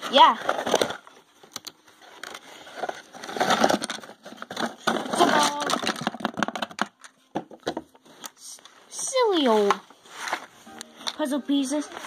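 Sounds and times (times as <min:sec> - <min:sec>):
puzzle pieces rattling: 0:02.0 - 0:07.1.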